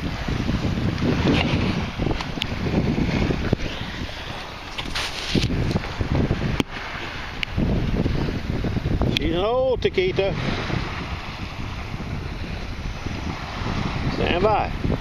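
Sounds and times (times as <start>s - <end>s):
water sloshing: 0.0s - 8.4s
wind buffeting microphone: 0.0s - 15.0s.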